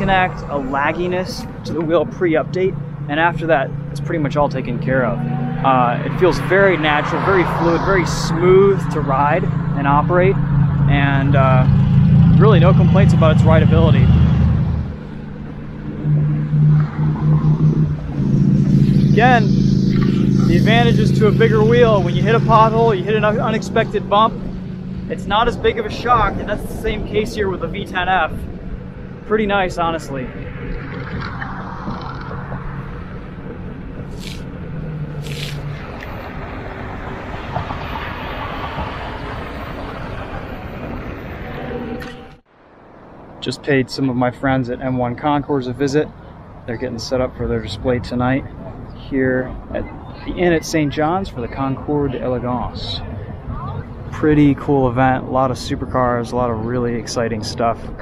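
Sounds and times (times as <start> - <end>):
steady low hum: 0.0 - 35.9
low rumble: 0.0 - 43.4
tire noise on asphalt: 0.0 - 58.0
wind buffeting microphone: 4.7 - 42.2.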